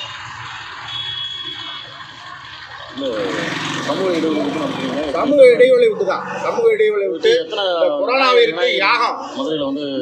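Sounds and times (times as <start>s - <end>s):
crowd murmur outdoors: 2.0s - 10.0s.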